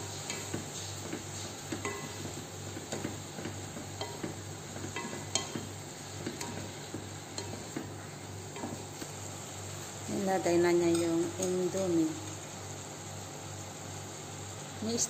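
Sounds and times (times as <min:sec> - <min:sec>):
vegetables sizzling in a pot: 0:00.0 - 0:15.0
spatula knocking and scraping pot: 0:00.2 - 0:09.1.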